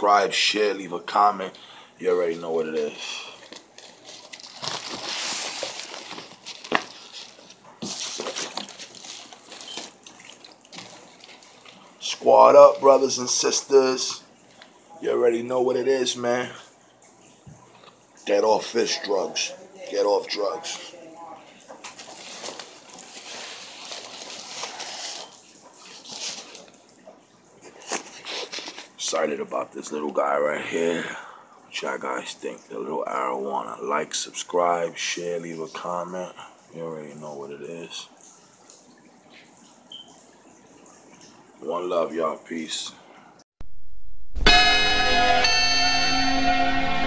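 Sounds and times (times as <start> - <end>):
plastic bag crinkling: 2.8 - 12.0, 21.8 - 26.8, 27.7 - 29.0
sharp crackles and knocks: 3.4 - 11.9
water sloshing: 3.4 - 13.2.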